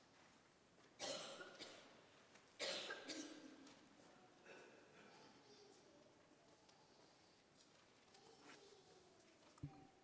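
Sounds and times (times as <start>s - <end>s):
people coughing: 1.0s - 2.0s, 2.6s - 3.6s, 4.4s - 5.2s.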